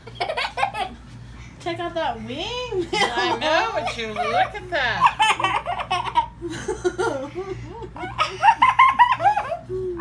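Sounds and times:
laughter in bursts: 5.2 - 10.0.

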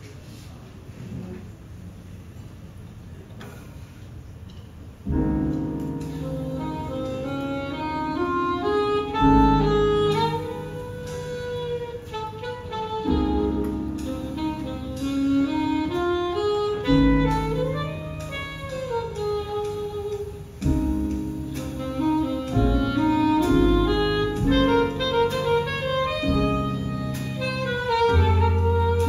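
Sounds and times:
slow grand piano chords: 5.0 - 29.0.

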